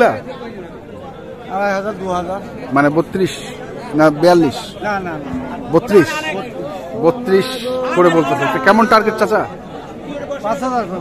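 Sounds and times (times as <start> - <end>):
chatter of voices: 0.0 - 11.0
men talking: 0.0 - 11.0.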